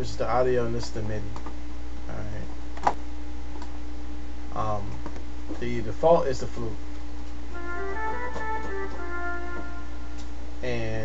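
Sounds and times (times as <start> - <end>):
steady low hum: 0.0 - 11.0
sustained flute notes: 7.5 - 10.3.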